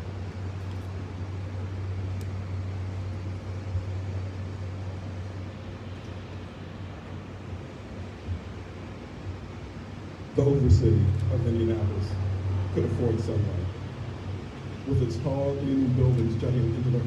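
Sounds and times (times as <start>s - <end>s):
city background rumble with hiss: 0.0s - 17.0s.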